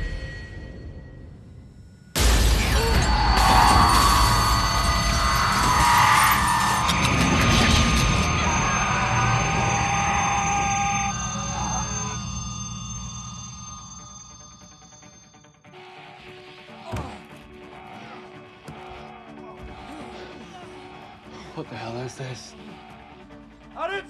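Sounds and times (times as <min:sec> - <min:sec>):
dramatic film score: 0:00.0 - 0:24.0.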